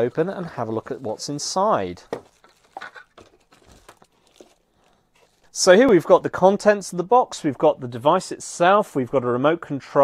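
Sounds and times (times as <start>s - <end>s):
packaging rustling and tapping: 1.9s - 6.1s.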